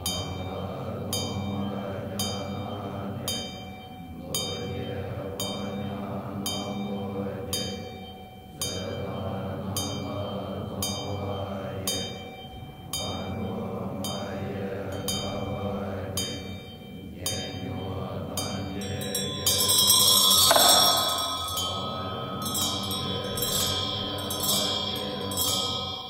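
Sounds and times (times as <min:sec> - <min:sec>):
monks chanting in low voices: 0:00.0 - 0:26.0
ringing metal percussion strikes: 0:00.0 - 0:26.0.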